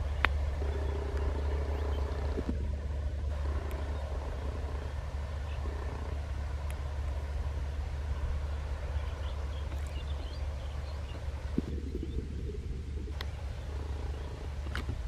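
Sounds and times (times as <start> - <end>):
distant train rumble: 0.0 - 15.0
faint hum: 0.0 - 15.0.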